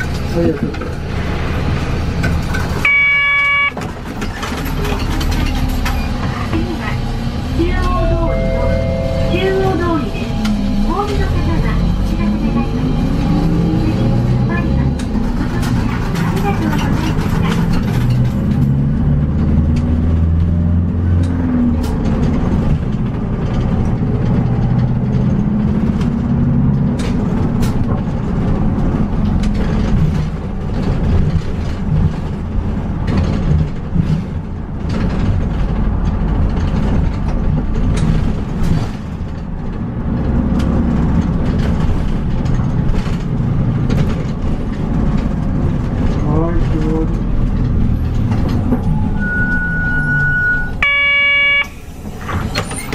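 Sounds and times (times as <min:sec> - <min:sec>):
clicks and rattles from bus body: 0:00.0 - 0:07.1, 0:14.2 - 0:49.6, 0:51.9 - 0:52.9
bus engine running: 0:00.0 - 0:52.9.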